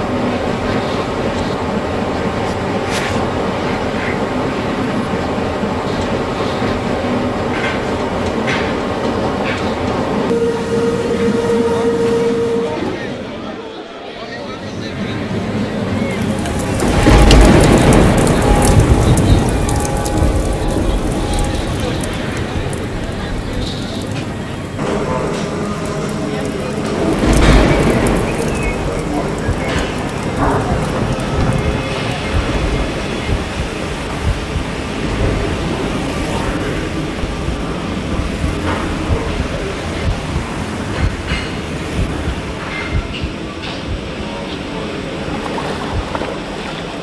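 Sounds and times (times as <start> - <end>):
metro train running: 0.0 - 47.0
rail vehicle rumbling on track: 0.0 - 47.0.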